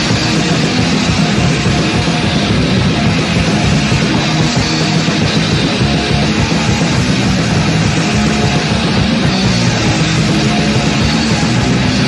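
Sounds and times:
distorted electric guitar: 0:00.0 - 0:12.0
hardcore punk band playing: 0:00.0 - 0:12.0.

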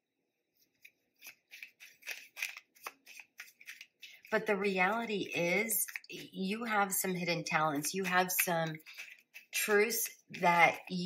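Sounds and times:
cards being shuffled: 0:00.6 - 0:06.4, 0:07.1 - 0:11.0.

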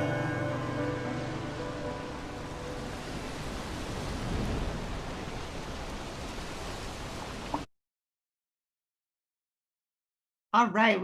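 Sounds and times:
music: 0:00.0 - 0:03.1
ocean surf rushing: 0:00.0 - 0:07.7.

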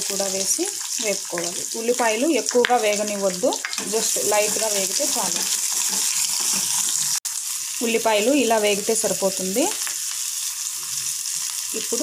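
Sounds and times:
food sizzling in hot oil: 0:00.0 - 0:12.0.

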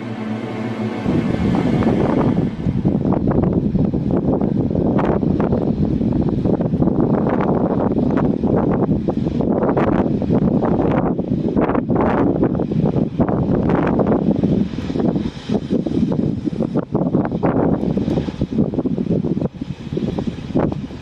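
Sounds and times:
wind noise on microphone: 0:00.0 - 0:21.0.

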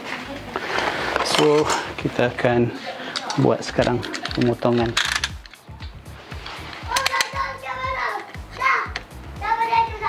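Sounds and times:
child's high voice: 0:06.9 - 0:10.0.

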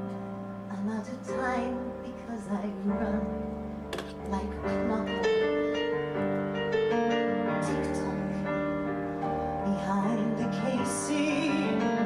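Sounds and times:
piano playing sustained chords: 0:00.0 - 0:12.0.

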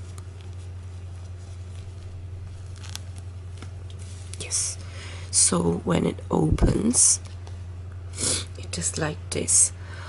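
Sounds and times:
fabric rustling: 0:00.0 - 0:04.6
steady low hum: 0:00.0 - 0:10.0.

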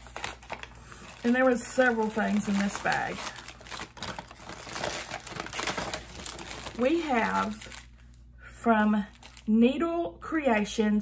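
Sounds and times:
packaging crinkling: 0:00.0 - 0:08.2, 0:09.0 - 0:09.5.

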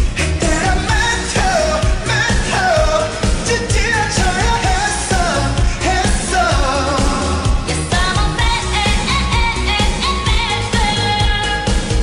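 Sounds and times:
pop song with sung vocals: 0:00.0 - 0:12.0.

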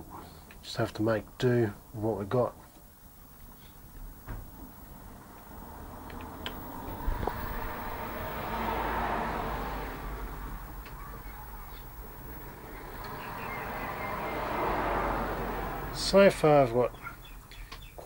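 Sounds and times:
steady low hum: 0:00.0 - 0:13.1
vehicles passing: 0:05.0 - 0:17.5.

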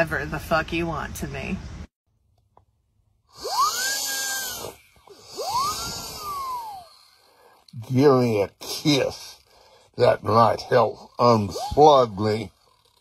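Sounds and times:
squealing novelty whistle: 0:03.4 - 0:07.0.

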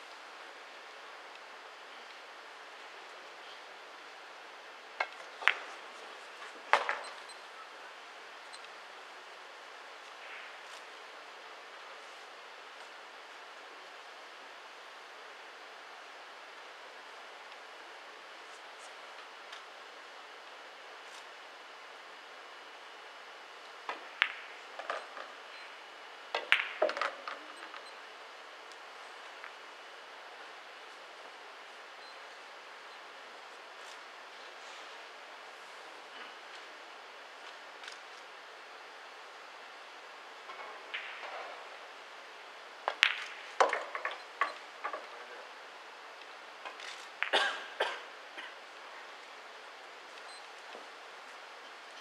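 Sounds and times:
pool balls clicking: 0:05.0 - 0:05.9, 0:23.8 - 0:25.4, 0:26.3 - 0:27.8, 0:40.4 - 0:41.8, 0:42.8 - 0:45.2.

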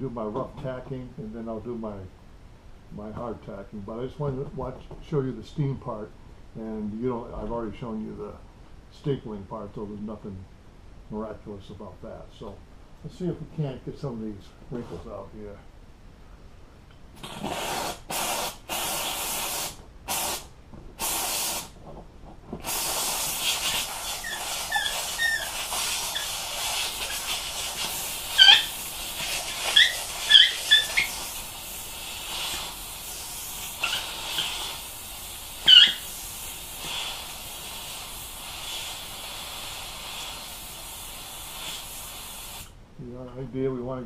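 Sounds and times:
steamer wand hissing: 0:17.2 - 0:21.8, 0:22.6 - 0:42.8
brief high squeaks: 0:24.1 - 0:25.6, 0:28.3 - 0:28.7, 0:29.7 - 0:31.1, 0:35.7 - 0:36.0.

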